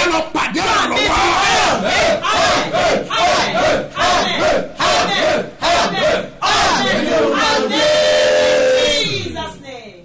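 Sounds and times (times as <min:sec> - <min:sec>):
woman praying aloud: 0:02.2 - 0:07.8.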